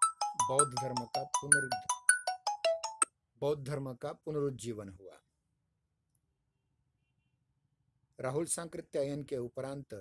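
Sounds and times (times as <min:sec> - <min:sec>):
man speaking: 0:00.4 - 0:01.9, 0:03.4 - 0:05.2.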